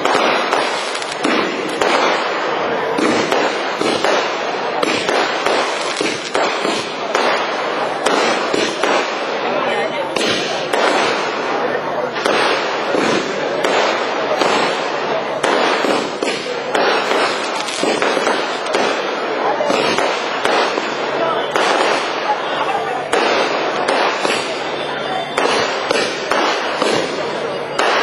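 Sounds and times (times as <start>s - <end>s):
fireworks bangs and crackles: 0.0s - 28.0s.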